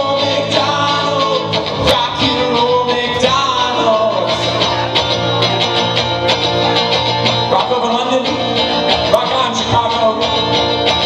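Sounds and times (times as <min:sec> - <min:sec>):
electric guitar strumming: 0:00.0 - 0:11.0.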